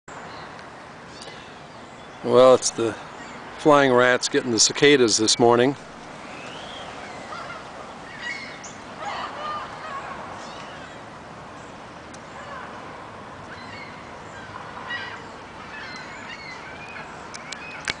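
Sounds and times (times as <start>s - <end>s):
gulls calling: 0.1s - 18.0s
outdoor background hiss: 0.1s - 18.0s.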